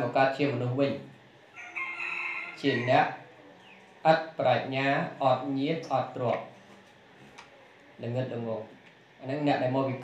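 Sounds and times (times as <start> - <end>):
rooster crowing: 1.5 - 3.3.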